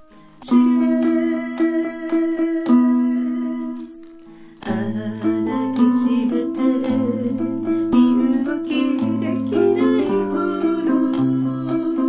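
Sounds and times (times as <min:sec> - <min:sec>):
jazz guitar chords: 0:04.6 - 0:12.0
person humming a sustained note: 0:04.7 - 0:12.0.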